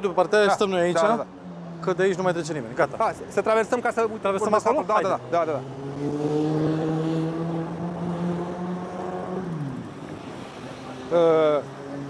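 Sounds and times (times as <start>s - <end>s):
street traffic noise: 0.0s - 12.0s
passing vehicle engine: 0.8s - 12.0s.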